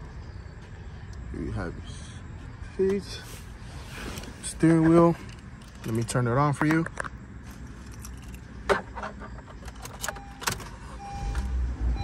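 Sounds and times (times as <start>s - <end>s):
car engine starting and running: 7.1s - 12.0s.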